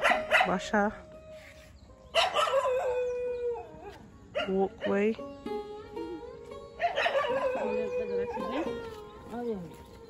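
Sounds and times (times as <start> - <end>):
background music: 0.0 - 10.0
dog howling: 2.2 - 4.0, 6.8 - 8.7.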